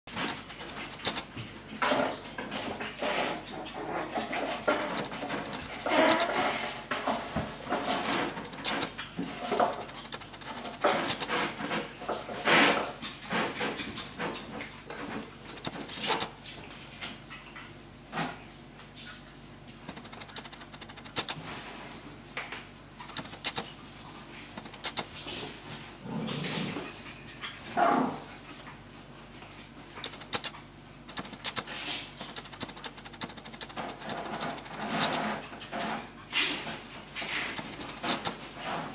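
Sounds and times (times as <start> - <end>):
claws scrabbling on tile floor: 19.0 - 27.6, 29.5 - 38.9.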